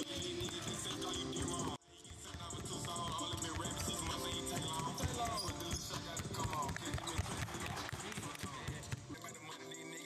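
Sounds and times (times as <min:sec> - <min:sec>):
basketballs bouncing on hardwood: 0:00.0 - 0:09.2
background music: 0:00.0 - 0:10.0.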